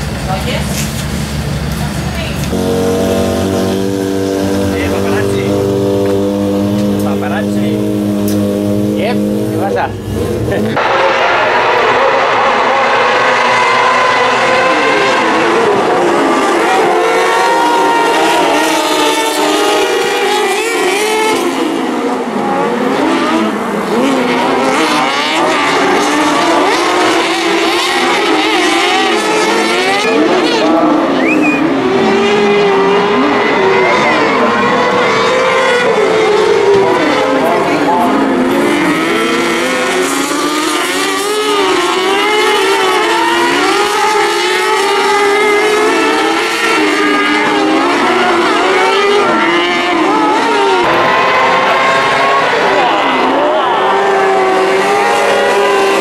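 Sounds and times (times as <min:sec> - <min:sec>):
buggy engines high-revving: 0:00.0 - 0:56.0.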